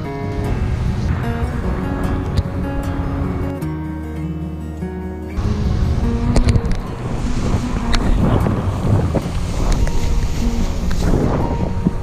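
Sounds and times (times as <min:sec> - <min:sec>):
wind rushing over microphone: 0:00.0 - 0:03.6, 0:05.4 - 0:12.0.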